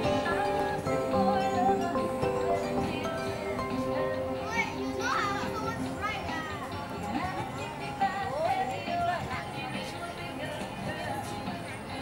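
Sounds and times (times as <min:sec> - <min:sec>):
background music: 0:00.0 - 0:12.0
voices calling and chattering: 0:00.0 - 0:12.0.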